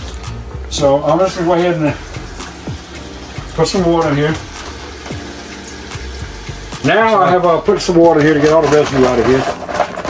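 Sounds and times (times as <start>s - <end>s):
tap water running into plastic bag: 1.1s - 10.0s.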